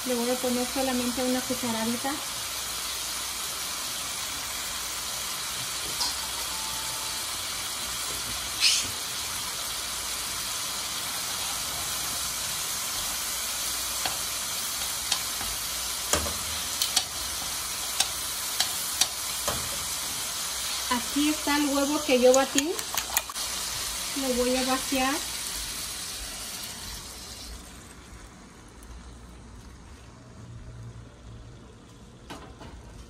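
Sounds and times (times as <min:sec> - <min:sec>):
vegetables sizzling in oil: 0:00.0 - 0:30.2.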